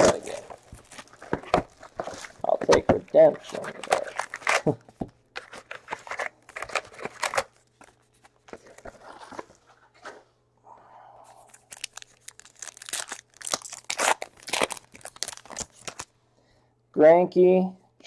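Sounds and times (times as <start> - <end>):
foil packaging crinkling and tearing: 0.0 - 9.6, 11.5 - 16.1.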